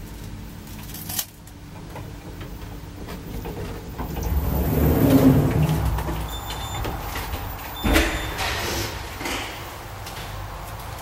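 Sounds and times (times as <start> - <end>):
elevator low rumble: 1.4 - 11.0.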